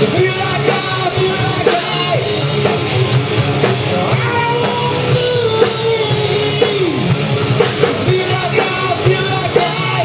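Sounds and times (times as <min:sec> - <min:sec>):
distorted electric guitars: 0:00.0 - 0:10.0
drum kit beat: 0:00.0 - 0:10.0.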